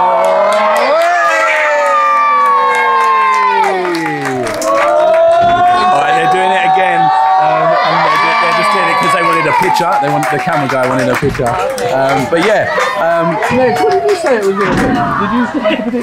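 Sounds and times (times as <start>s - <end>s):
crowd cheering and shouting: 0.0s - 16.0s.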